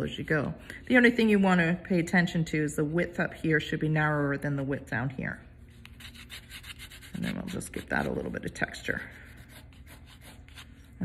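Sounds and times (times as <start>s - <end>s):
pencil scratching on paper: 6.0s - 8.3s, 9.3s - 10.9s.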